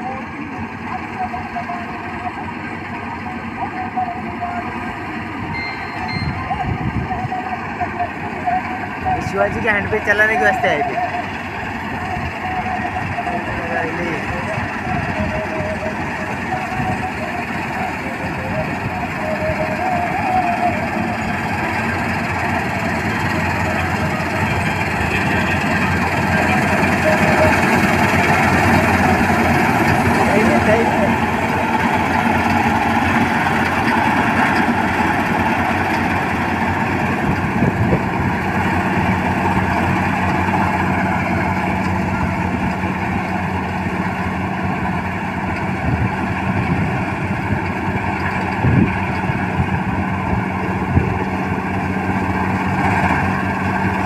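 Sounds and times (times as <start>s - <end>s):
combine harvester running: 0.0s - 54.0s.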